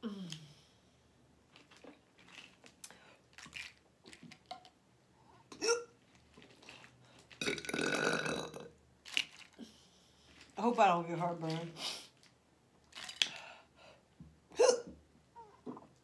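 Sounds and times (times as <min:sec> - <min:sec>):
woman burping: 0:05.5 - 0:05.9, 0:07.4 - 0:08.7, 0:14.5 - 0:15.0.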